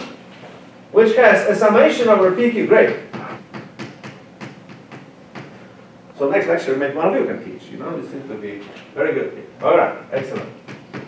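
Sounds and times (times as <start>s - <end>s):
chalk tapping on blackboard: 2.9s - 5.6s.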